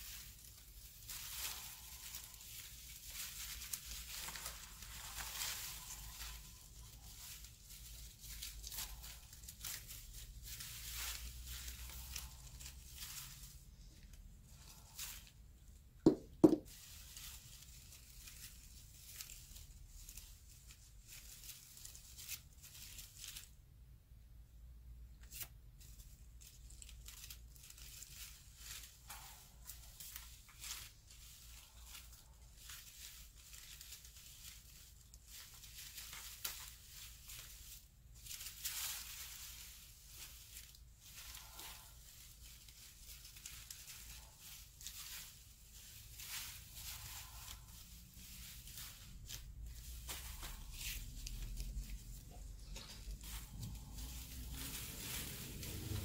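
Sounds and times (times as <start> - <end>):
paper rustling and crinkling: 0.0 - 23.9, 25.2 - 56.0.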